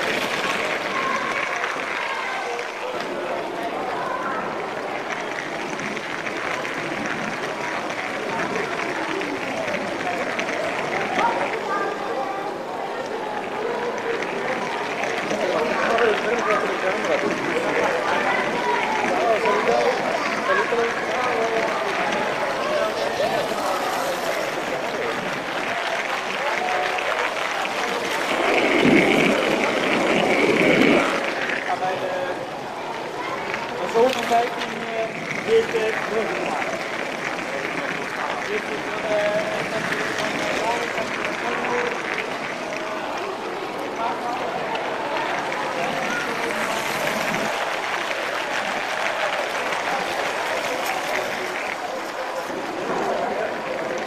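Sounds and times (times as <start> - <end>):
crowd chatter: 0.0 - 54.0.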